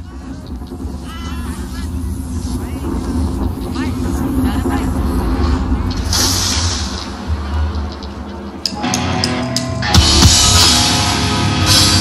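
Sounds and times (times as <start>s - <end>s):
burst of high noise: 0.0s - 8.6s
deep bass rumble: 0.0s - 9.2s.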